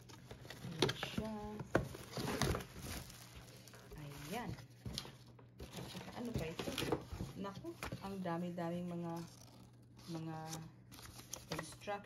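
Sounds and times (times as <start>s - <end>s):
cardboard box rustling: 0.0s - 8.3s
plastic wrapping crinkling: 0.0s - 11.9s.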